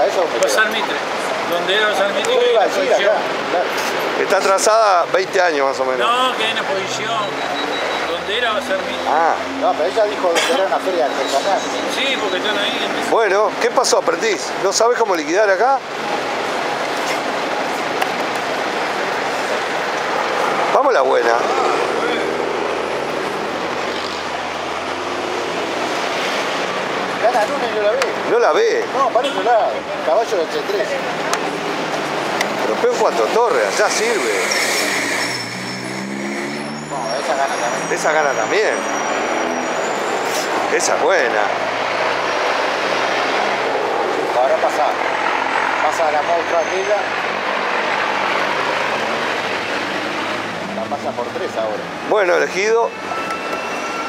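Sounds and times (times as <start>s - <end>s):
street traffic: 0.0s - 54.0s.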